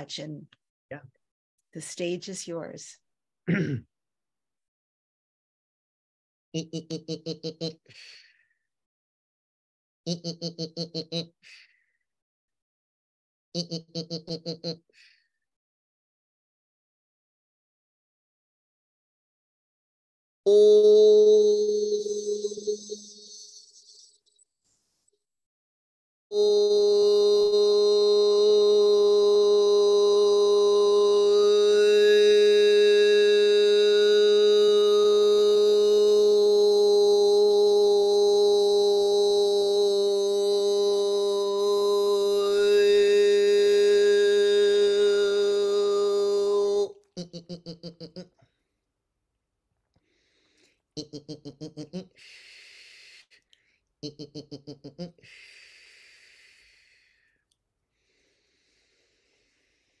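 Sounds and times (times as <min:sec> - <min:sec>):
man laughing: 0:06.6 - 0:07.9, 0:10.1 - 0:11.4, 0:13.6 - 0:14.8, 0:47.2 - 0:48.4, 0:51.0 - 0:52.2, 0:54.0 - 0:55.2
breathy exhale: 0:50.0 - 0:50.8, 0:52.2 - 0:53.8, 0:55.2 - 0:57.4, 0:58.0 - 1:00.0.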